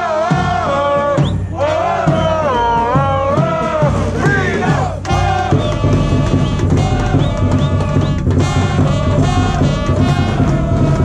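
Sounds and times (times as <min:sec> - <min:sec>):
crowd singing a chant: 0:00.0 - 0:11.0
drum thumping steady beat: 0:00.0 - 0:11.0.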